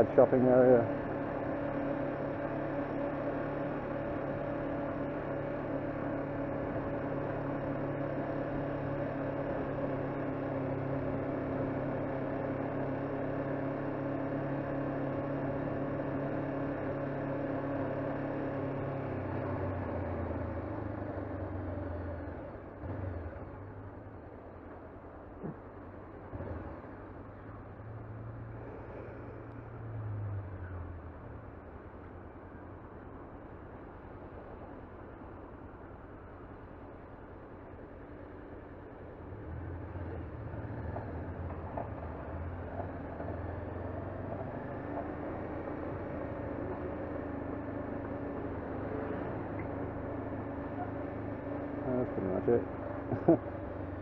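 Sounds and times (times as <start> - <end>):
motorcycle engine running: 30.1 - 54.0.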